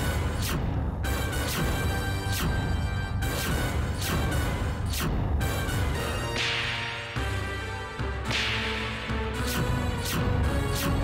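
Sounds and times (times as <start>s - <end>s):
sustained background score: 0.0s - 11.0s.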